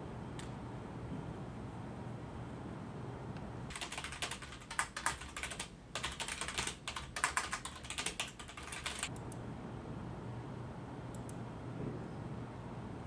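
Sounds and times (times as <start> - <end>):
fast typing on keyboard: 3.7 - 9.1.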